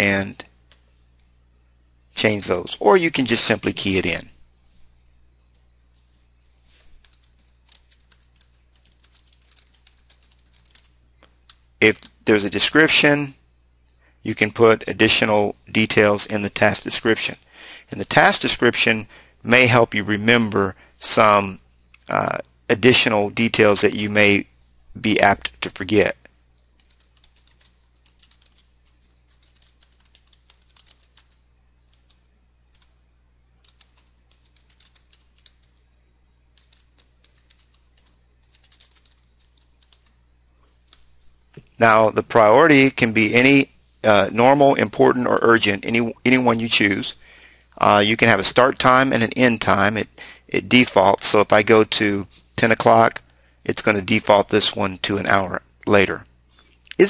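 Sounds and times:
faint low hum: 0:00.0 - 0:57.0
computer keyboard typing: 0:07.0 - 0:10.9, 0:26.6 - 0:32.9, 0:33.6 - 0:35.9, 0:36.6 - 0:40.1.

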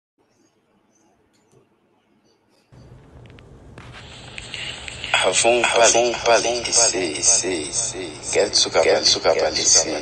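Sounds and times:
low steady hum: 0:00.2 - 0:08.8.

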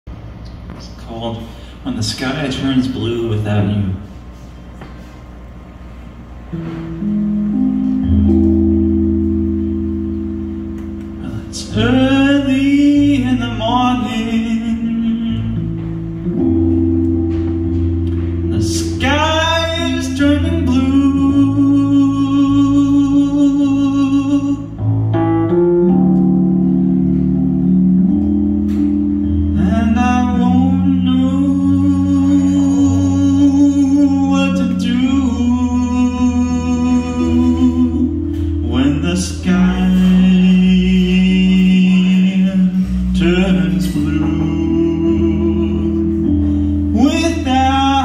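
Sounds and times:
low bass note: 0:05.4 - 0:48.0
keyboard notes and chord: 0:05.5 - 0:48.0
man singing: 0:11.2 - 0:15.9, 0:18.5 - 0:24.8, 0:29.5 - 0:46.3, 0:46.9 - 0:48.0.

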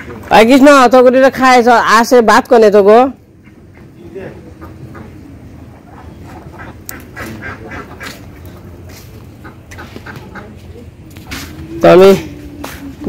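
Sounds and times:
ducks quacking: 0:00.0 - 0:00.3, 0:03.3 - 0:11.7
faint voices: 0:03.2 - 0:13.0.

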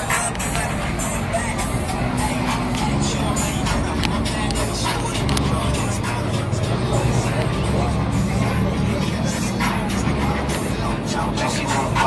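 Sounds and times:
bass-heavy music from car stereo: 0:00.0 - 0:12.0.

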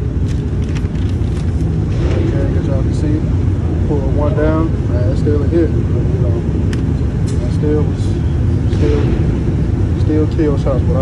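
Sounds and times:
ventilation low rumble: 0:00.0 - 0:11.0
muffled voices: 0:01.1 - 0:11.0.

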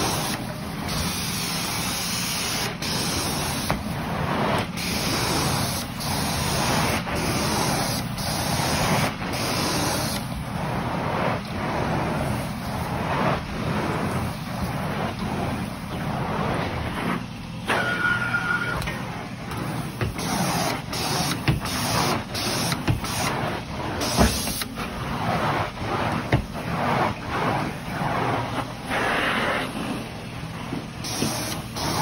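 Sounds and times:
carpet-cleaning machine suction hiss: 0:00.0 - 0:32.0.

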